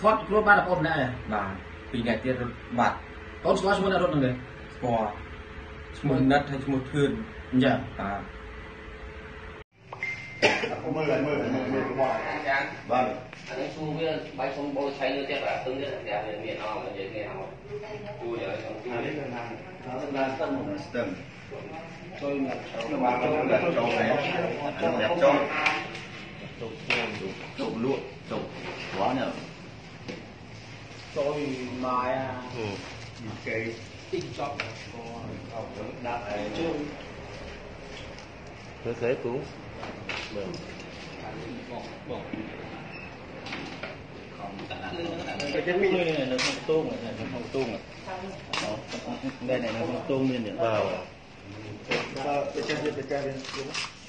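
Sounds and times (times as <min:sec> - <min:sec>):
people talking: 0:00.0 - 0:05.2, 0:05.9 - 0:08.4, 0:10.4 - 0:29.5, 0:31.2 - 0:37.1, 0:44.2 - 0:53.8.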